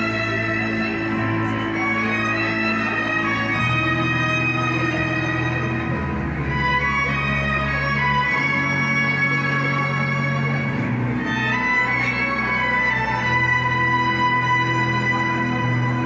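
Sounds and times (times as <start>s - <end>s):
orchestra strings holding chords: 0.0s - 16.0s.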